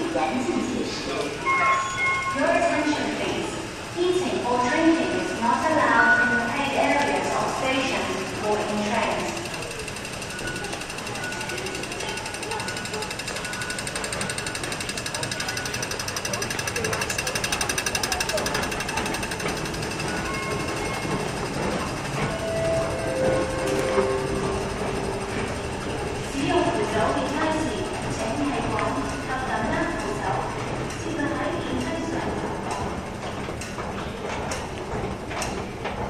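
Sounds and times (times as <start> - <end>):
escalator mechanical rattle: 6.6 - 36.0.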